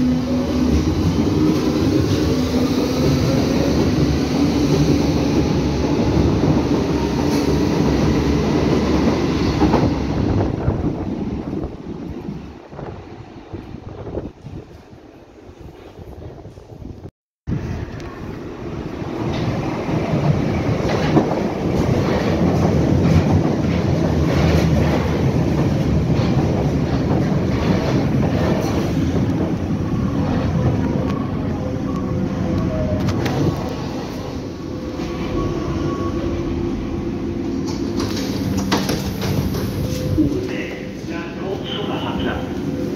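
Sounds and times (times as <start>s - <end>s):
train wheels rumbling on track: 0.0s - 14.9s, 15.6s - 42.9s.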